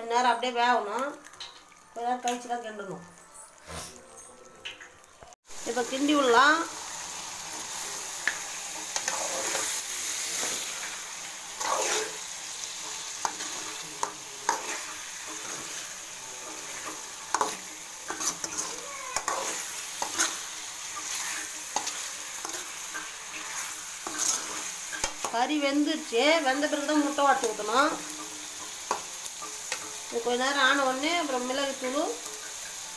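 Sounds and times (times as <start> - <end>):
meat and eggs sizzling: 0.0 - 32.9
spatula scraping and clinking pan: 8.2 - 10.9, 11.6 - 12.2, 12.8 - 25.4.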